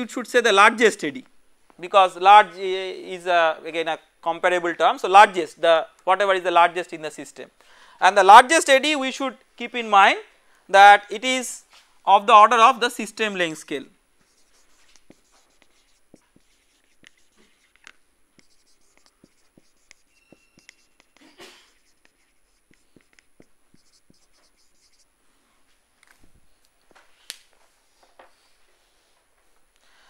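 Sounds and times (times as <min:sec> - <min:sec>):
marker pen on whiteboard: 0:14.2 - 0:25.1.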